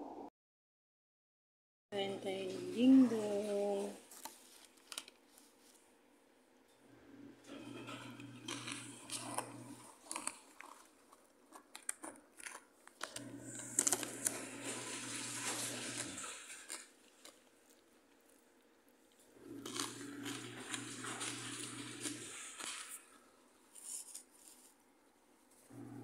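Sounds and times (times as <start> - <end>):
snack bag crinkling: 4.0 - 5.9, 7.5 - 25.7.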